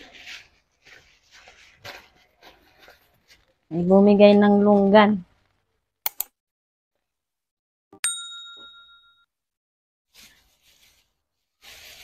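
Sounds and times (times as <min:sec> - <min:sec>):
notification bell ding: 0:08.0 - 0:09.3.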